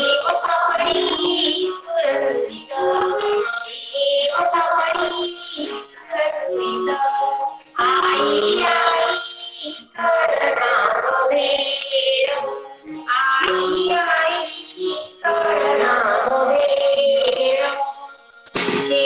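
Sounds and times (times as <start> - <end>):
woman singing into a microphone: 0.0 - 19.0.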